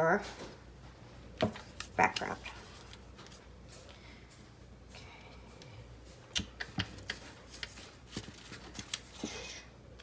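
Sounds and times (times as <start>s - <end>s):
paper and paintbrush clicks and taps: 6.4s - 9.3s.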